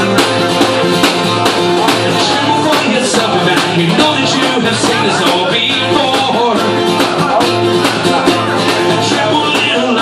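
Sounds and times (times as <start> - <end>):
acoustic guitar strumming: 0.0 - 10.0
man singing into a microphone: 0.0 - 10.0.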